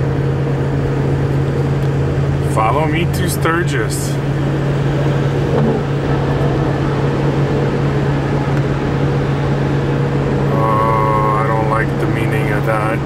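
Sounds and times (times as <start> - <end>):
vehicle engine and road noise: 0.0 - 13.0.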